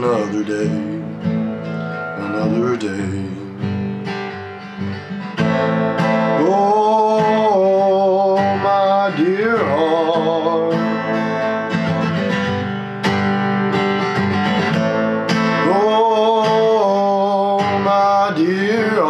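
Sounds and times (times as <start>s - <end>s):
man's wordless singing: 0.0s - 1.2s, 2.2s - 3.8s, 6.3s - 11.5s, 15.6s - 19.0s
acoustic guitar strumming: 0.0s - 19.0s.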